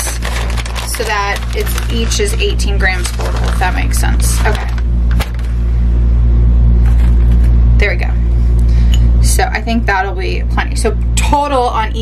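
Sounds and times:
woman speaking: 0.0s - 4.8s, 7.8s - 8.3s, 9.2s - 12.0s
loud low hum: 0.0s - 12.0s.

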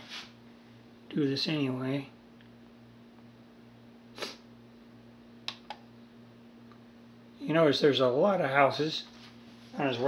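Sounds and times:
low steady hum: 0.2s - 10.0s.

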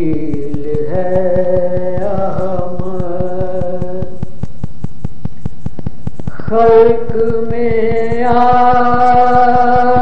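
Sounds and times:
fast ticking beat: 0.0s - 10.0s
man singing sustained note: 6.3s - 10.0s.

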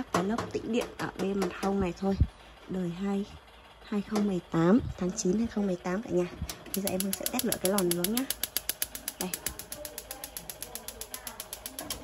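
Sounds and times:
gas igniter clicking rapidly: 6.4s - 12.0s.

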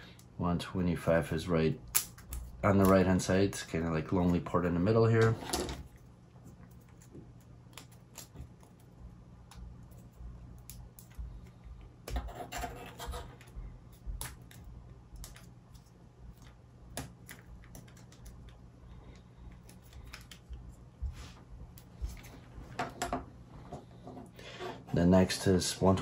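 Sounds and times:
faint low hum: 0.0s - 26.0s
scraping rub: 12.2s - 13.5s.

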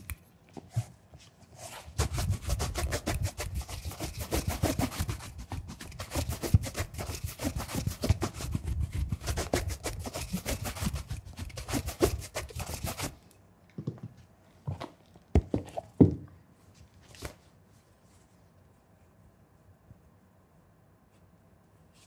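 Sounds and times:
brush sweeping over leather shoe: 0.9s - 13.2s.

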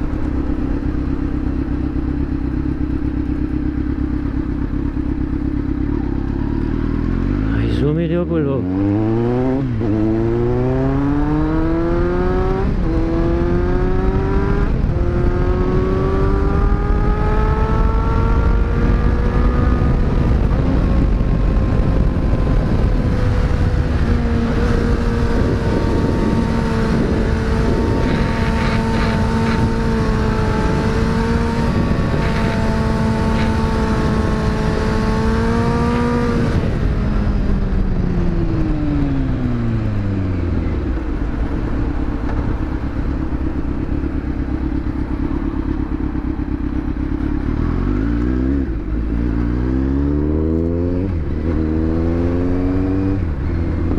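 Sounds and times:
gear changes: 0.0s - 53.9s
motorcycle engine: 0.0s - 53.9s
wind rush: 8.8s - 43.9s.

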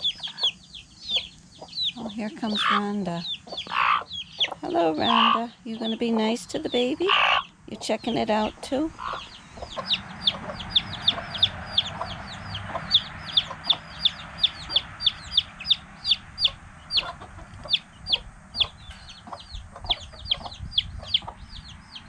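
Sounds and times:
chicks peeping: 0.0s - 22.0s
hens clucking low: 1.2s - 21.5s.

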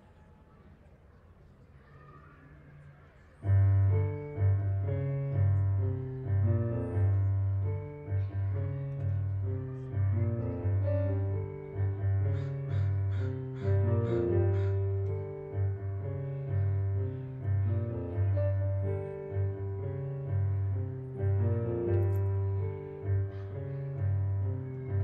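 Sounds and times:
digital piano playing: 3.4s - 25.0s.

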